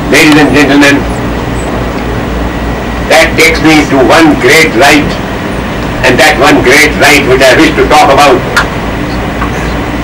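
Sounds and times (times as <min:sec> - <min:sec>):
lecture hall background rumble: 0:00.0 - 0:10.0.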